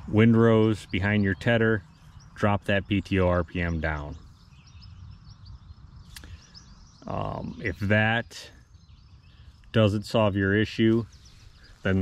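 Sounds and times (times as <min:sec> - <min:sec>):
small birds chirping: 0:00.0 - 0:12.0
sharp click: 0:06.1 - 0:06.4.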